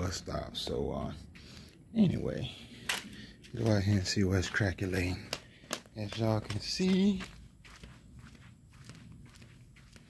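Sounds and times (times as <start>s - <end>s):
faint footsteps: 1.0s - 10.0s.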